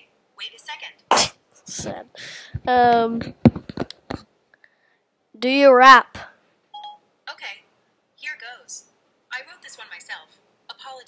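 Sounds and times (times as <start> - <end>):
short electronic beep: 6.8 - 7.0.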